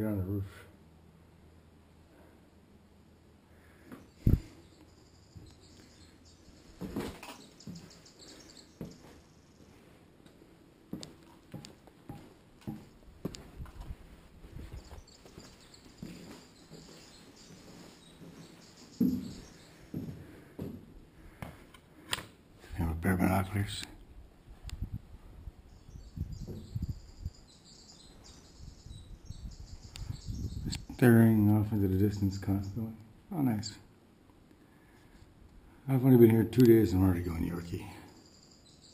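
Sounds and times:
footsteps on concrete: 6.7s - 21.8s.

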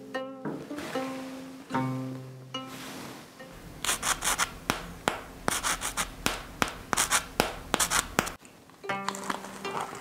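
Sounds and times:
macaron shell crackling: 6.8s - 10.0s.

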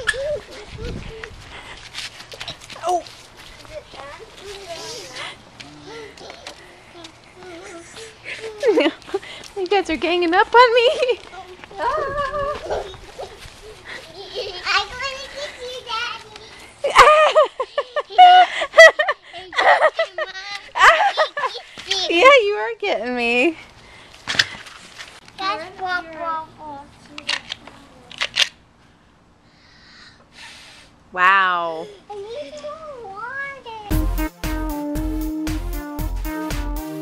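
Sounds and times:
young children calling: 0.0s - 1.8s, 2.6s - 9.4s, 10.9s - 22.2s
music: 33.9s - 37.0s.

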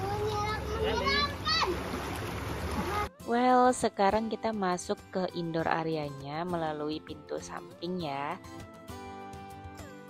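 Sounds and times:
river water flowing: 0.0s - 3.1s
feet splashing in water: 1.6s - 3.1s.

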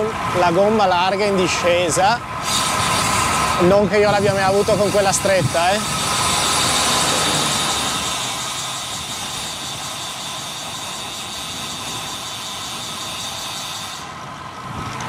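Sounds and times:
tyre noise on asphalt: 1.4s - 15.0s
wind on microphone: 2.4s - 8.2s.

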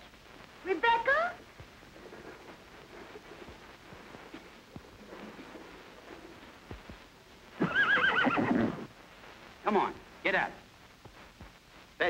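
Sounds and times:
horse whinnying: 7.6s - 8.9s.

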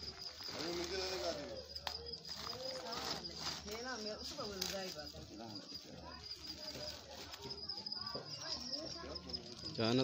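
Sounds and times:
faint people talking: 0.0s - 10.0s.

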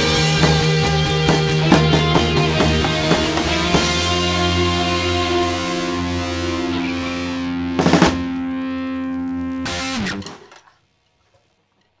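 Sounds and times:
distorted electric guitar chord: 0.0s - 10.2s
loud noisy hit: 0.4s - 8.5s.

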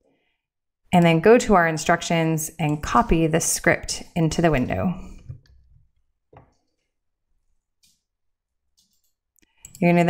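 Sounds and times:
person speaking: 1.0s - 5.4s, 9.7s - 10.0s
computer mouse click: 8.8s - 9.8s.

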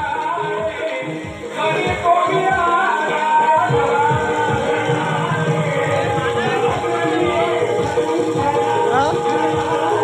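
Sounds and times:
music with singing voices: 0.0s - 10.0s.

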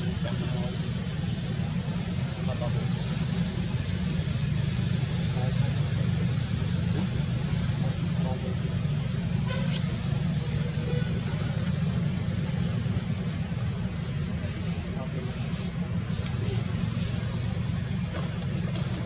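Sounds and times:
faint voices: 0.0s - 19.0s
steady low rumble: 0.0s - 19.0s.

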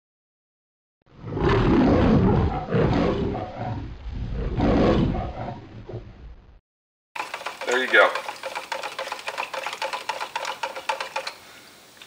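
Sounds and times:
lion roaring: 1.1s - 6.2s.

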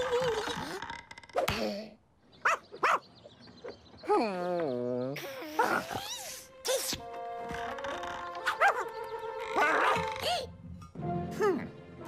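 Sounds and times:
cartoon dog yipping: 9.5s - 10.2s.

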